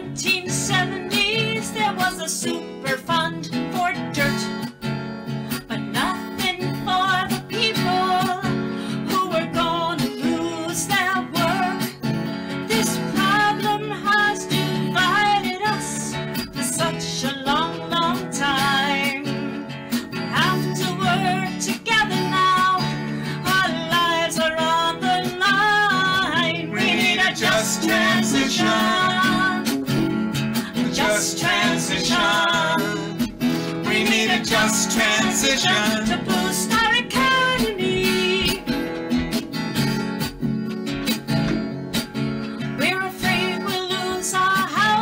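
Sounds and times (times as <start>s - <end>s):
woman singing folk song: 0.0s - 39.6s, 42.6s - 45.0s
strummed acoustic guitar: 0.0s - 45.0s.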